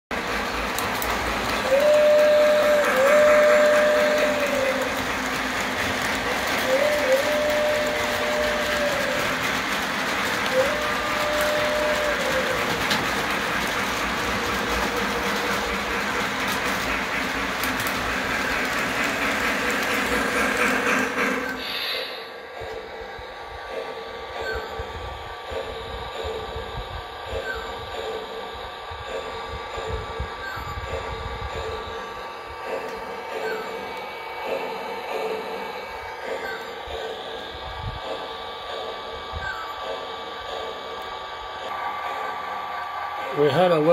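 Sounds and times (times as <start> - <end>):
model train running on track: 0.1 - 43.9
rail cars clicking: 0.1 - 43.9
model train steam whistle: 1.0 - 22.9.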